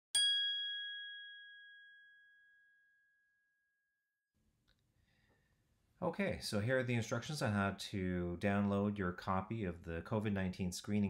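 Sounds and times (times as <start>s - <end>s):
bell-like ding: 0.1s - 3.9s.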